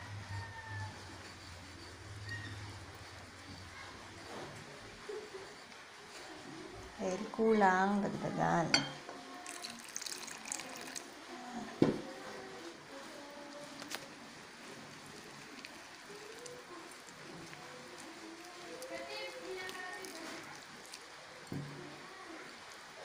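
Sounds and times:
water pouring into glass bowl: 0:08.7 - 0:11.1
wire whisk mixing batter: 0:08.7 - 0:11.2, 0:12.6 - 0:21.9.

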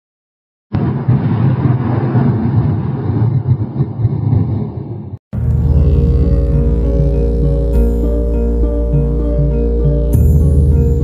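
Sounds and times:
loud low cinematic rumble: 0:00.8 - 0:11.0.

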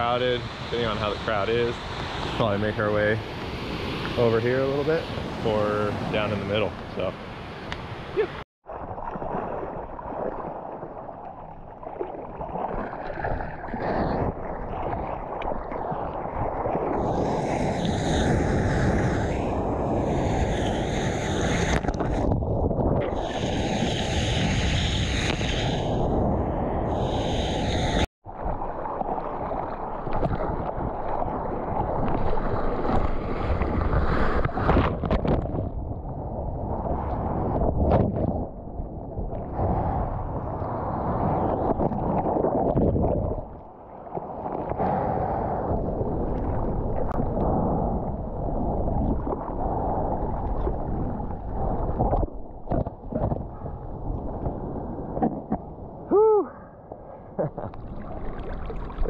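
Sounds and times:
seawater rushing and splashing: 0:00.0 - 0:38.6, 0:57.5 - 0:59.0
wind buffeting microphone: 0:30.2 - 0:43.6.

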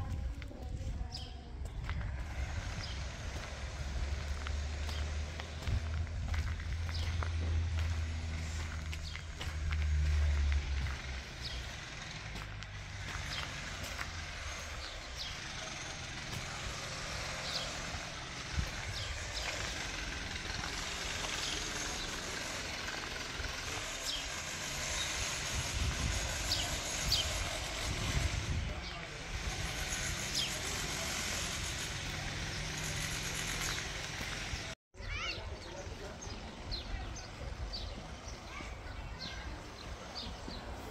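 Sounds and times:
low wind rumble on microphone: 0:00.0 - 0:08.0, 0:25.4 - 0:29.4.

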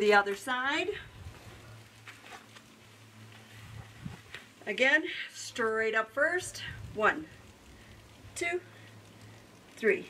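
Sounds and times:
steady low hum: 0:00.0 - 0:10.0
rustling on foam mat: 0:01.2 - 0:04.6.

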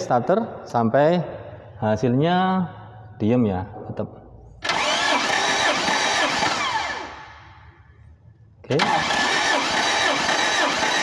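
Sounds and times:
engine cranking by starter motor: 0:04.6 - 0:07.5, 0:08.7 - 0:11.0.

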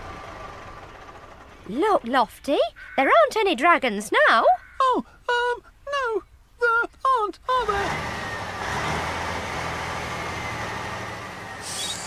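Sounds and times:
low engine hum with hiss: 0:07.7 - 0:12.0.

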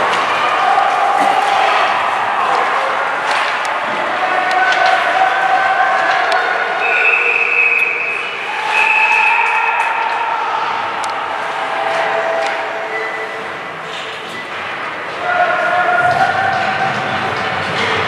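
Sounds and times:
spectators shouting: 0:00.0 - 0:13.7, 0:14.7 - 0:18.0
hockey sticks and puck clacking: 0:00.0 - 0:18.0.

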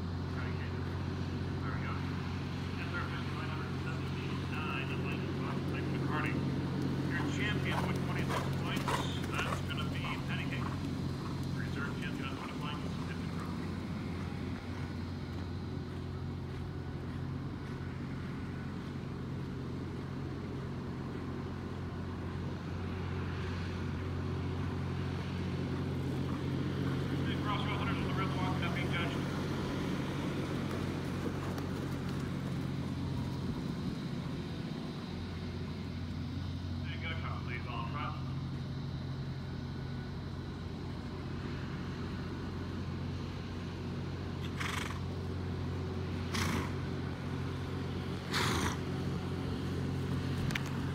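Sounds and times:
low motor hum: 0:00.0 - 0:50.9
faint voices: 0:01.5 - 0:14.8.

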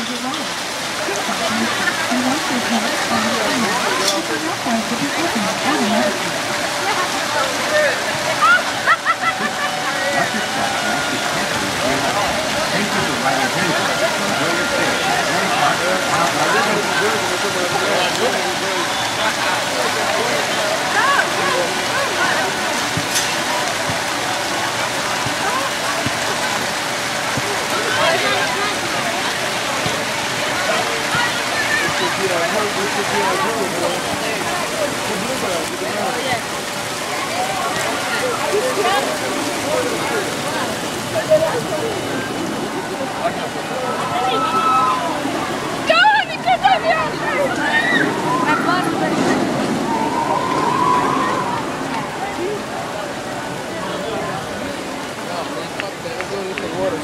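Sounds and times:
crowd chatter: 0:00.0 - 0:57.0
fountain jets splashing into pool: 0:00.0 - 0:57.0.

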